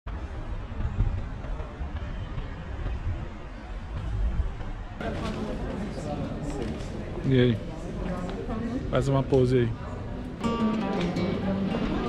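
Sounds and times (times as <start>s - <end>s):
faint indistinct voices: 0.1s - 12.0s
low street rumble: 0.1s - 12.0s.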